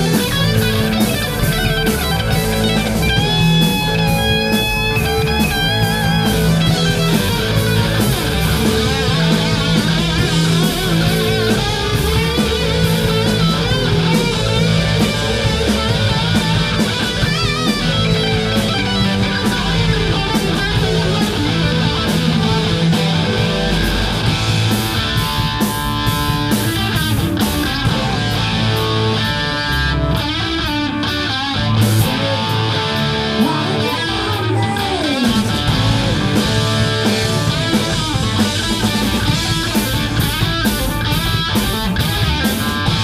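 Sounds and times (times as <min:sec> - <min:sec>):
drum kit with cymbals: 0:00.0 - 0:43.0
electric guitars: 0:00.0 - 0:43.0
live rock band playing: 0:00.0 - 0:43.0.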